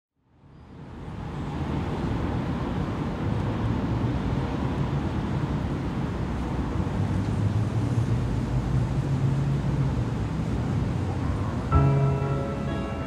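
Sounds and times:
rumble of vehicles: 0.2s - 13.0s
street noise hiss: 0.2s - 13.0s.

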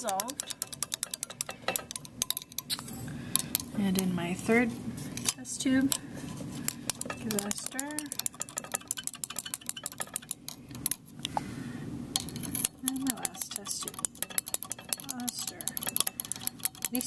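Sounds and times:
rod clinking in glass test tube: 0.0s - 2.8s, 6.7s - 11.0s, 12.2s - 17.0s.

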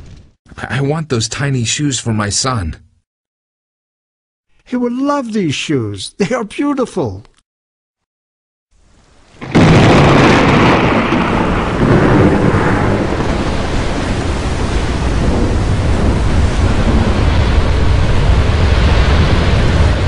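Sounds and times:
heavy rain: 8.8s - 20.0s
low thunder rumbling: 9.3s - 20.0s
loud thunderclap: 9.4s - 20.0s.

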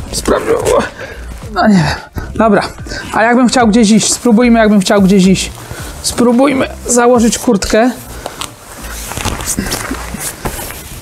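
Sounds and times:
jacket fabric rustling: 0.0s - 11.0s.

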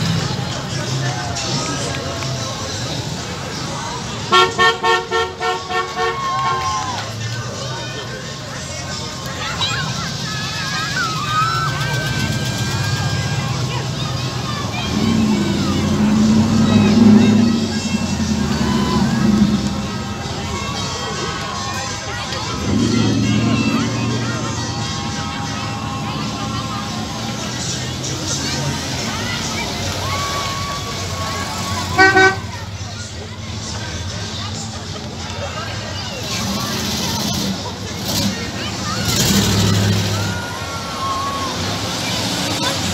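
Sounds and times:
car engines rumbling past: 0.0s - 42.9s
onlookers chattering: 0.0s - 42.9s
car horn honks: 4.3s - 6.6s, 31.9s - 32.5s.

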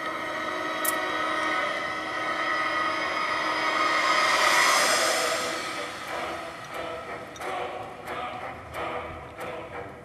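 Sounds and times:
film soundtrack drone: 0.0s - 10.0s.

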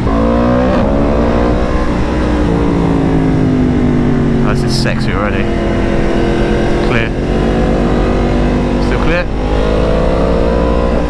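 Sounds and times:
low wind rumble: 0.0s - 11.0s
motorcycle engine revving: 0.0s - 11.0s.

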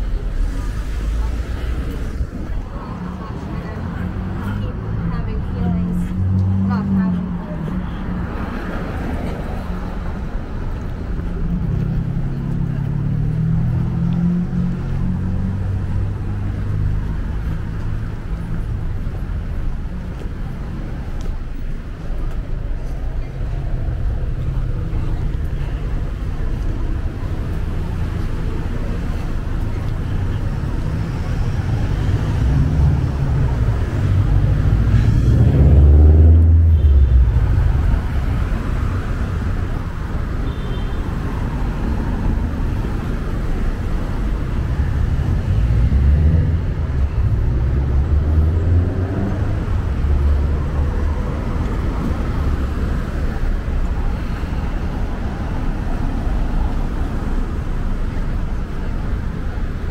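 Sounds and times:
cars driving past: 0.0s - 59.9s
steady low traffic rumble: 0.0s - 59.9s.

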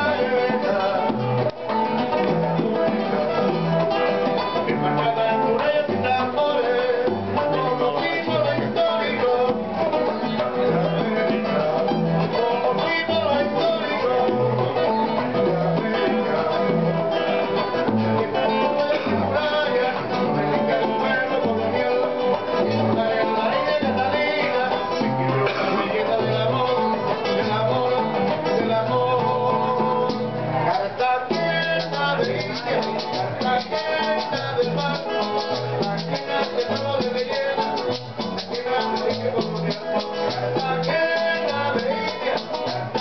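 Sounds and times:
acoustic guitars playing: 0.0s - 43.0s
bongos: 0.0s - 43.0s
repeating bass line: 0.0s - 43.0s.

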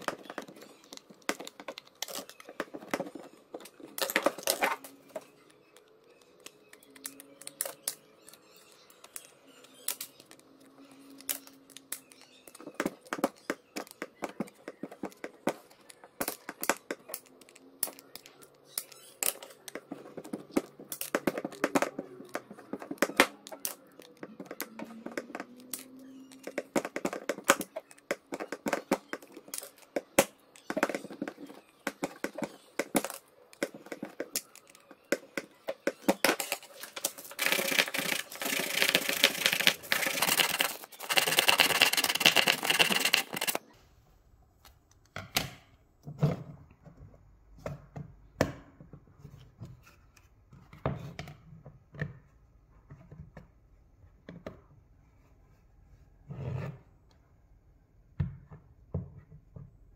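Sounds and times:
snips cutting plastic sheet: 36.1s - 43.6s
plastic disc sanded on sandpaper: 37.2s - 43.6s.

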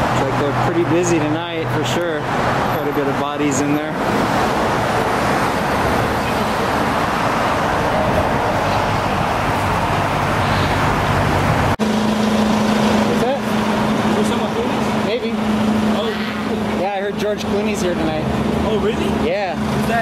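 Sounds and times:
car engine: 0.0s - 20.0s
traffic noise: 0.0s - 20.0s.

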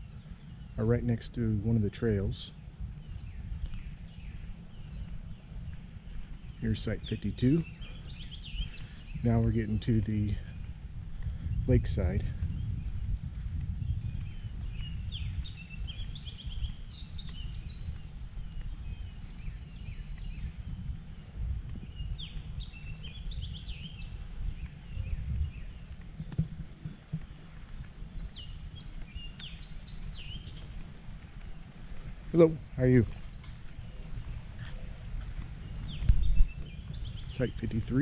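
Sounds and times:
songbirds singing and chirping: 0.0s - 38.0s
steady low rumble: 0.0s - 38.0s.

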